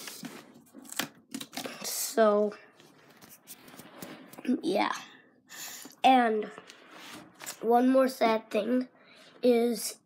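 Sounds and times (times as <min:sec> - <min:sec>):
cardboard and plastic scraping: 0:00.0 - 0:01.7.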